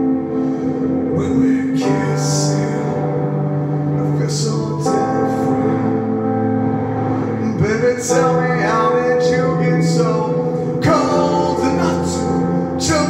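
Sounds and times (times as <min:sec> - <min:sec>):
sustained synthesizer chords: 0:00.0 - 0:13.0
man singing: 0:01.1 - 0:06.3, 0:07.3 - 0:13.0.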